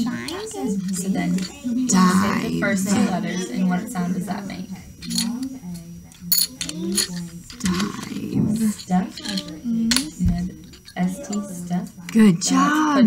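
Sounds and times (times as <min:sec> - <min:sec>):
voices sounding out a word: 0:00.0 - 0:13.0.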